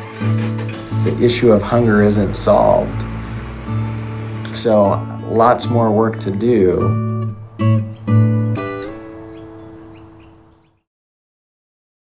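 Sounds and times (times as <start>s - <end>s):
acoustic guitar chord ringing: 0.0s - 10.6s.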